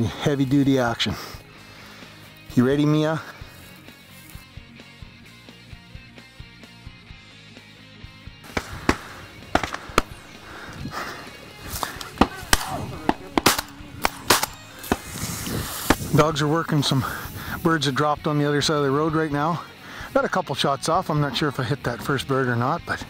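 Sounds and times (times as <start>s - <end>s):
background music with ticking beat: 3.4s - 15.3s
shotgun shots: 8.4s - 15.2s.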